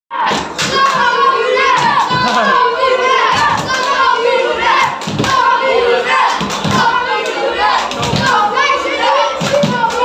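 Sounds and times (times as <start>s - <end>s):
children chanting and cheering: 0.1s - 10.0s.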